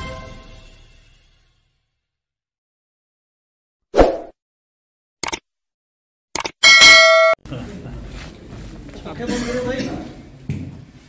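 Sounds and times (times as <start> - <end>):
bright bell ding: 6.6 - 7.4
murmur of people: 7.4 - 10.7.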